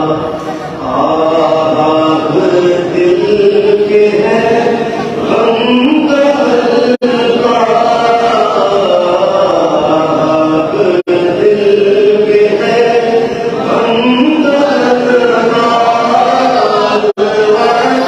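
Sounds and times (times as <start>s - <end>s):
man chanting into microphone: 0.0s - 18.0s.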